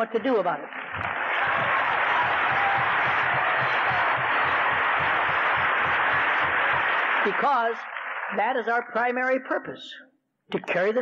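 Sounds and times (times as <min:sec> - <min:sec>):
audience applauding: 0:00.7 - 0:08.9.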